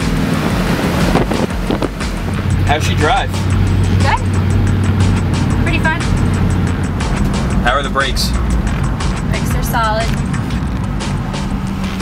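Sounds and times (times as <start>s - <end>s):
background music with steady beat: 0.0s - 12.0s
low engine drone: 0.0s - 12.0s
road noise: 0.0s - 12.0s.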